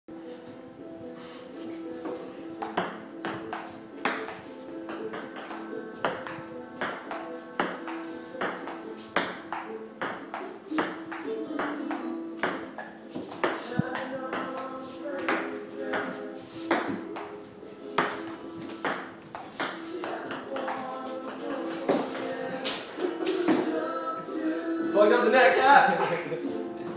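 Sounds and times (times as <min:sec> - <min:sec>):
music playing in a room: 0:00.1 - 0:26.9.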